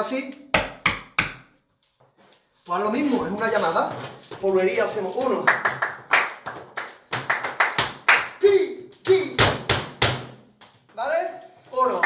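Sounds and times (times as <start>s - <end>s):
dance shoes tapping floor: 0.4s - 11.0s
heavy foot stamps: 2.7s - 5.4s.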